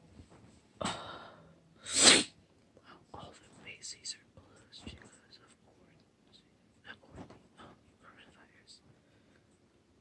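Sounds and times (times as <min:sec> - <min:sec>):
person sneezing: 0:01.8 - 0:02.4
soft breathing: 0:07.6 - 0:09.7.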